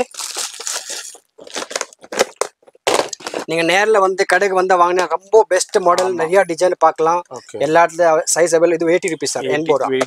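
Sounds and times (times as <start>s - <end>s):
plastic film crinkling: 0.0s - 3.8s.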